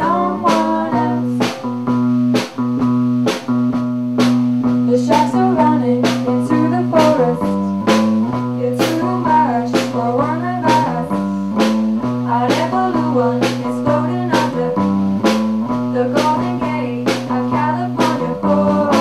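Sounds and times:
woman singing: 0.0s - 1.6s, 4.9s - 11.4s, 12.2s - 14.8s, 15.9s - 19.0s
drum beat with cymbal hits: 0.0s - 19.0s.

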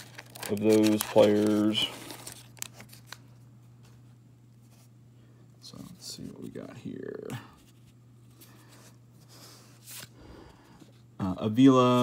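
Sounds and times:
wrapper and cards rustling: 0.0s - 3.3s.

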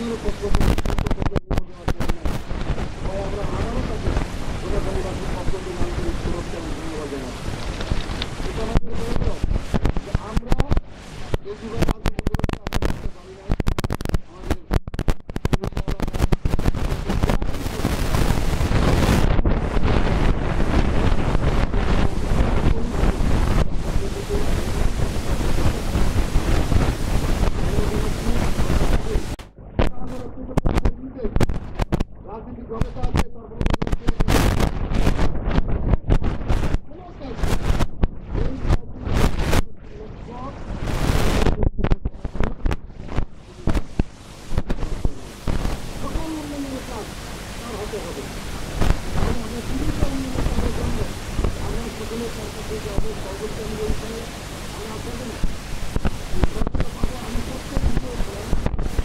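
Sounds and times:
man giving a speech into microphone: 0.0s - 7.4s
dense rumbling noise: 0.0s - 59.0s.

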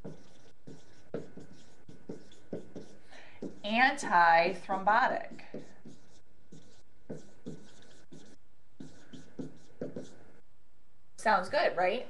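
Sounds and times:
pen strokes writing: 0.0s - 3.7s, 5.2s - 10.3s.

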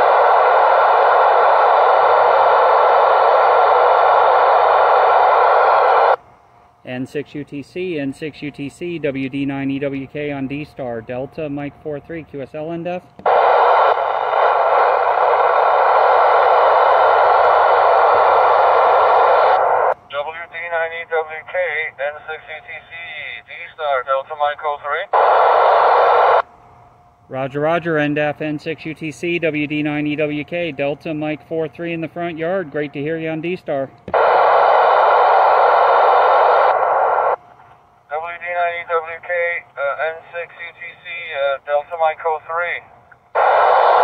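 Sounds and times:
radio receiver hiss: 0.0s - 6.2s, 13.2s - 26.5s, 34.1s - 44.0s.

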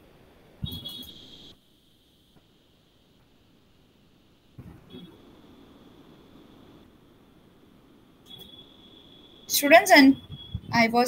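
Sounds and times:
high-pitched whine: 0.0s - 11.0s
low hiss and hum: 0.0s - 11.0s.

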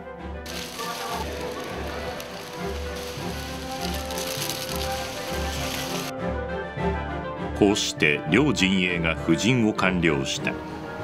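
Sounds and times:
plastic wrappers rustling: 0.5s - 6.1s.

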